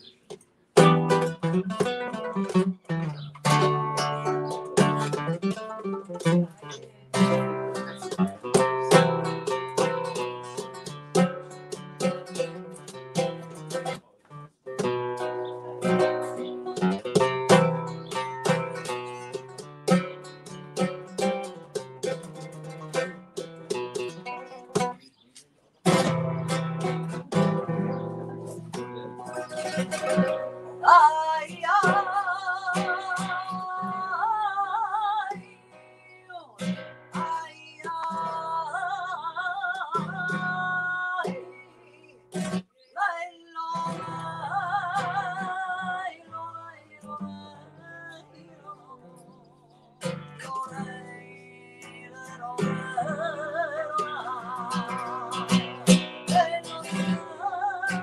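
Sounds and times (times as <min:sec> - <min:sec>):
flamenco guitar: 0:00.0 - 0:58.0
woman singing with vibrato: 0:30.2 - 0:41.9, 0:42.9 - 0:58.0.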